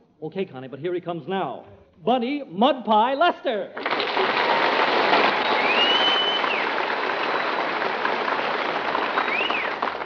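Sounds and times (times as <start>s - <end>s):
audience applauding: 3.8s - 10.0s
whistle: 5.4s - 6.8s, 9.1s - 10.0s.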